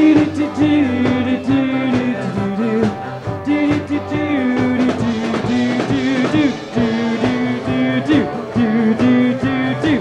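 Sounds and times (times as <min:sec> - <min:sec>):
drum hits: 0:00.0 - 0:10.0.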